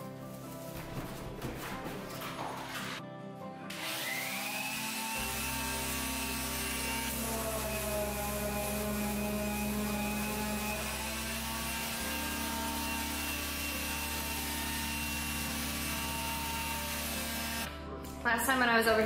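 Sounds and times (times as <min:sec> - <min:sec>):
orbital sander on wood: 0:03.7 - 0:17.7.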